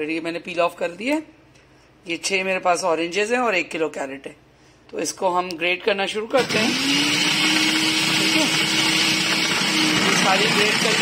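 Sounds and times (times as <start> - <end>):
food processor shredding carrots: 6.4 - 11.0.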